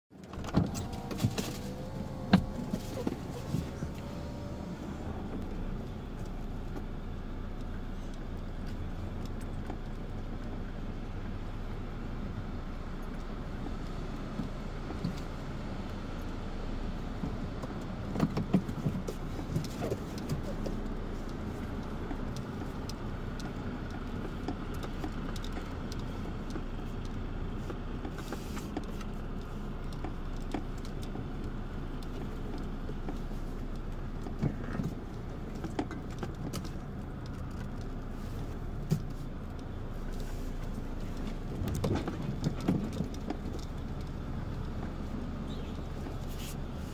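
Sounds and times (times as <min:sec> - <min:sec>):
engine idling from inside cabin: 0:00.1 - 0:46.9
light ticks: 0:05.3 - 0:10.8, 0:18.5 - 0:46.7.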